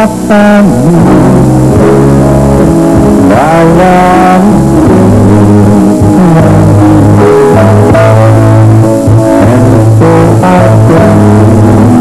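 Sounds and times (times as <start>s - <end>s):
band accompaniment: 0.0s - 12.0s
man and woman singing duet: 3.2s - 12.0s.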